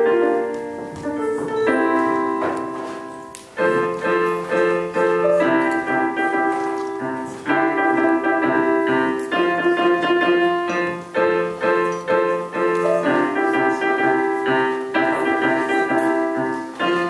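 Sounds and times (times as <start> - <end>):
digital piano tune: 0.0 - 17.0.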